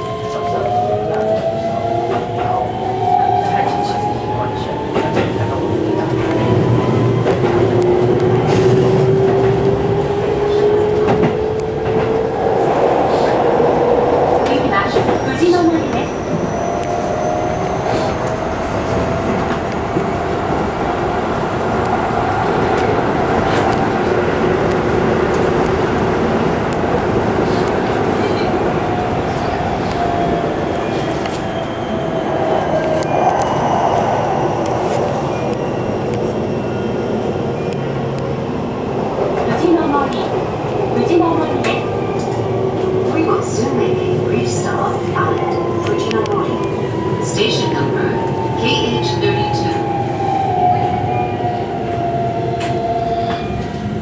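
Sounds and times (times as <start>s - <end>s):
train wheels rumbling on rail: 0.0s - 54.0s.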